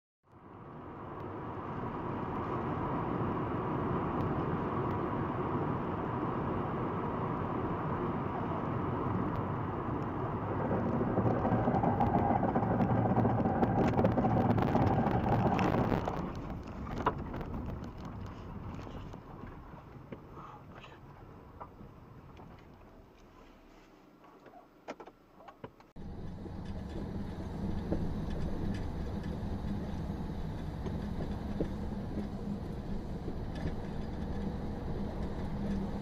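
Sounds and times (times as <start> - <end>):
car road and engine noise: 0.2 - 36.0.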